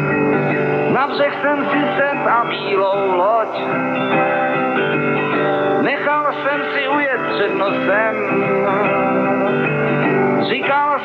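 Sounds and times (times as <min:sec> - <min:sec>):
acoustic guitar: 0:00.0 - 0:11.0
man singing: 0:00.7 - 0:04.4, 0:05.7 - 0:11.0.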